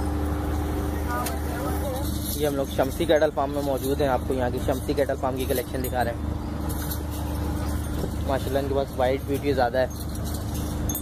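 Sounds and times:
faint constant tone: 0.0 - 11.0
low mechanical hum: 0.0 - 11.0
faint jingling: 1.5 - 11.0.

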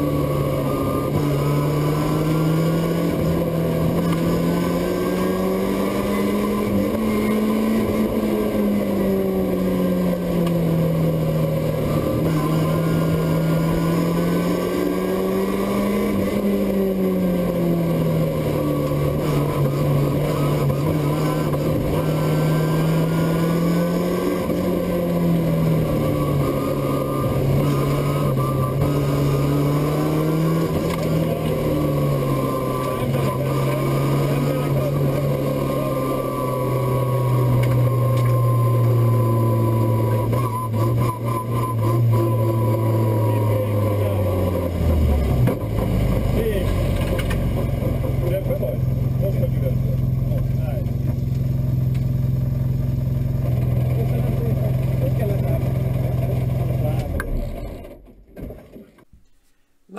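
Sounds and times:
car engine from inside cabin: 0.0 - 59.1.

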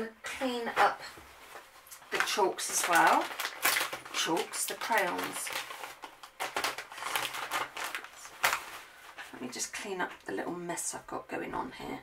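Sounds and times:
plastic wipes packet crinkling: 0.4 - 10.2.

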